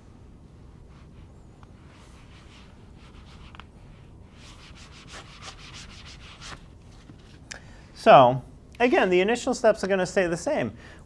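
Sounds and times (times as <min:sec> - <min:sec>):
eraser rubbing on whiteboard: 0:00.9 - 0:03.7, 0:04.3 - 0:06.7.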